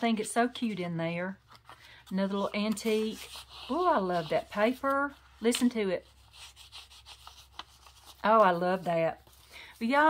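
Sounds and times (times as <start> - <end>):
paper pages rustling: 1.4 - 10.0.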